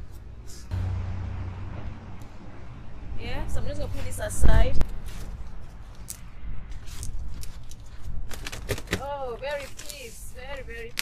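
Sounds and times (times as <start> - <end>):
low steady rumble: 0.1 - 6.8.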